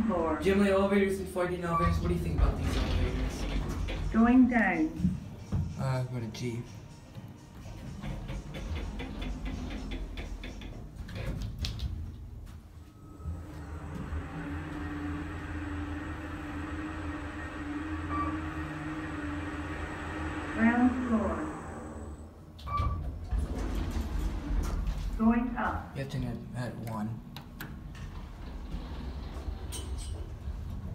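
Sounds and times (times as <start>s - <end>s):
elevator motor hum with whine: 0.0s - 5.6s, 7.1s - 26.5s, 27.2s - 30.9s
elevator doors clicking open: 1.7s - 4.4s, 7.8s - 12.0s, 22.6s - 24.9s, 27.4s - 30.9s
elevator doors knocking shut: 1.8s - 4.5s, 7.8s - 11.6s.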